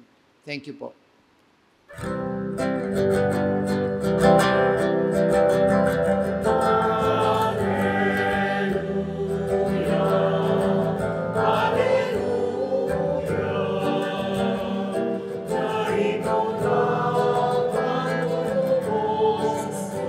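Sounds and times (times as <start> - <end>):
musical accompaniment: 1.9 - 20.0
choir singing a hymn: 6.0 - 20.0.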